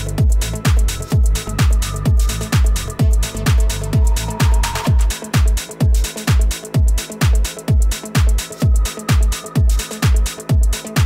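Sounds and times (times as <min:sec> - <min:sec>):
bright high percussion: 0:00.0 - 0:11.0
electronic dance track: 0:00.0 - 0:11.0
kick drum: 0:00.0 - 0:11.0.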